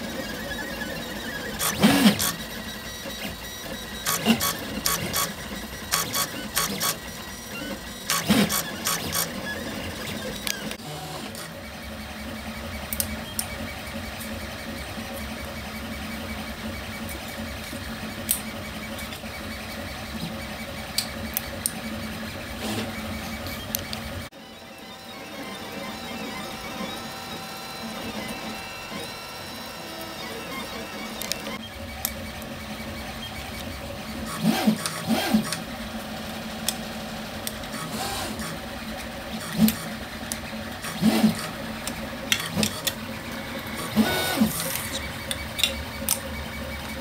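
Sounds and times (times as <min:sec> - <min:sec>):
printer motors whirring and buzzing: 0:00.0 - 0:47.0.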